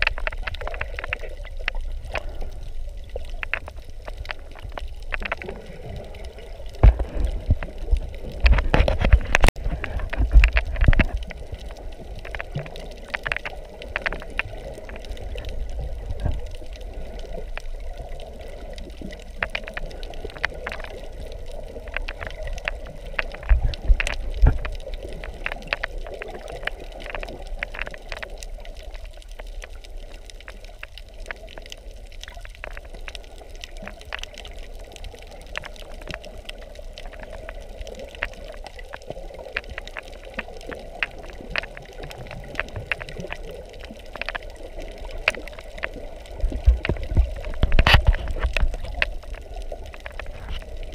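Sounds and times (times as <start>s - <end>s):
underwater clicks and crackles: 0.0s - 50.9s
underwater rush: 0.0s - 50.9s.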